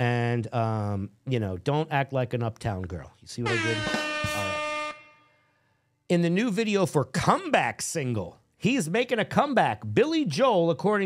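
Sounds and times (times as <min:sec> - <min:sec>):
blaring horn tone: 0:03.4 - 0:05.7.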